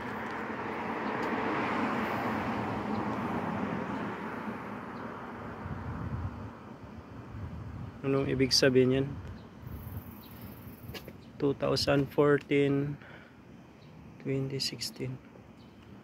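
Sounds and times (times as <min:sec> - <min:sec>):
vehicle passing: 0:00.0 - 0:06.6.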